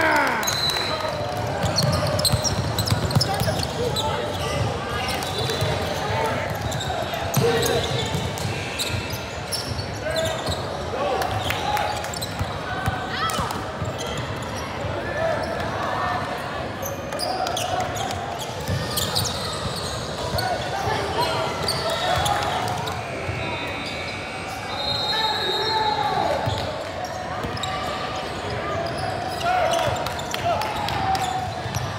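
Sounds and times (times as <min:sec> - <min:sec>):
voices of players and spectators: 0:00.0 - 0:31.9.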